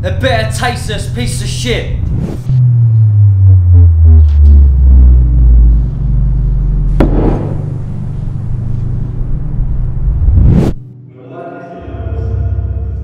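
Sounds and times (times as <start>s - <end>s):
deep low drone: 1.9s - 10.6s
rising swell: 2.0s - 10.8s
sharp hit: 6.9s - 8.6s.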